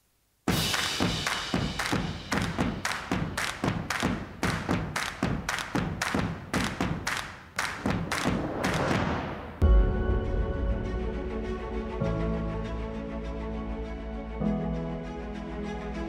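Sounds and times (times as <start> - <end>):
intro music with heavy thumps: 0.5 - 7.1, 7.8 - 12.0.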